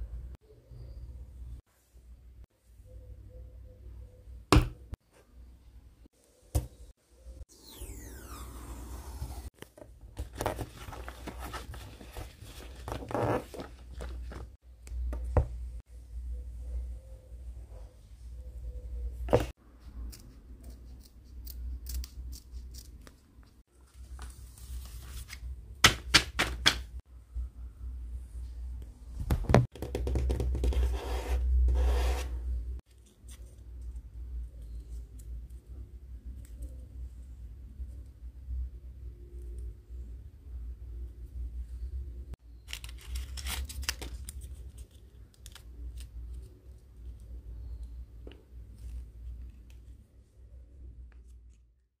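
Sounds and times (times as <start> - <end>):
paper crinkling and rustling: 10.2 - 14.6, 42.6 - 46.6.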